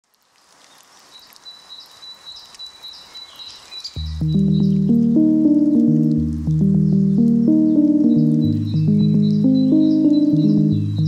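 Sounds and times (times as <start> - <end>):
repeating chirps: 4.0 - 11.0.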